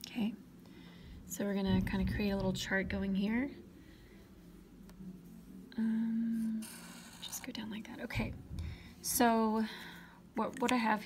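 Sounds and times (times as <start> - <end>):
woman humming: 5.7 - 7.2.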